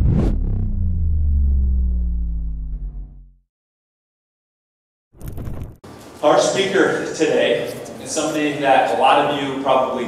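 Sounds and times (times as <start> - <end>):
rushing hit: 0.0 - 3.3
deep rumble with falling tones: 0.0 - 3.4.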